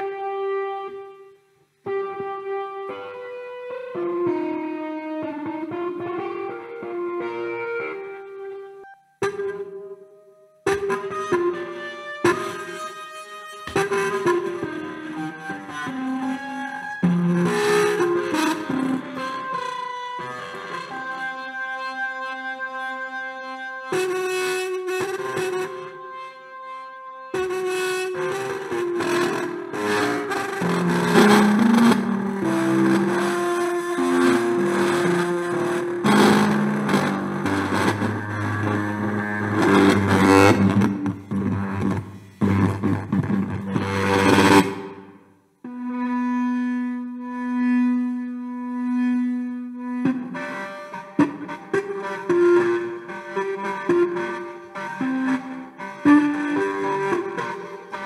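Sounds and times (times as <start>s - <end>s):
buzzy metallic synth notes: 27.4s - 45.1s.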